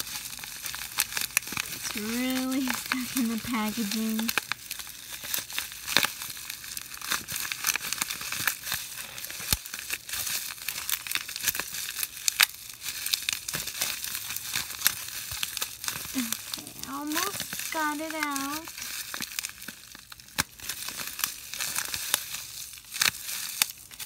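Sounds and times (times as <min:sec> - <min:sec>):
plastic packaging crinkling: 0:00.0 - 0:24.0.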